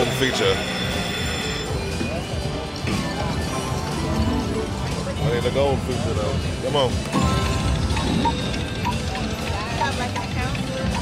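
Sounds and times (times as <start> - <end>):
faint background chatter: 0.0 - 11.0
slot machine music and chimes: 0.0 - 11.0
casino din: 7.1 - 11.0.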